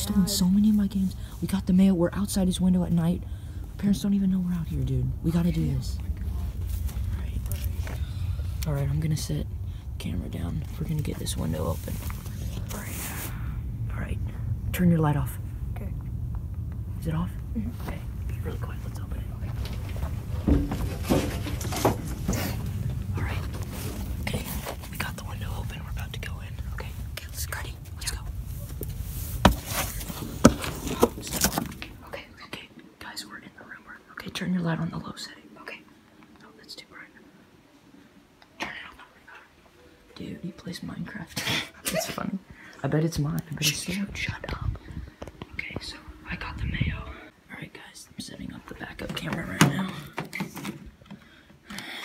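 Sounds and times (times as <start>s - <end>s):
low rumble: 0.0s - 32.1s, 43.6s - 47.5s
rustling: 10.6s - 13.6s, 17.6s - 25.7s, 26.6s - 32.0s
person whispering: 17.1s - 19.8s, 23.1s - 28.4s, 32.0s - 37.3s, 38.6s - 39.6s, 43.4s - 44.8s, 45.5s - 50.2s.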